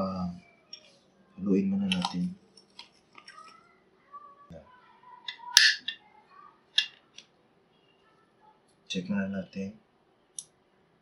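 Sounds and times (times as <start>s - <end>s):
wires picked up: 1.8s - 3.6s, 5.3s - 6.0s.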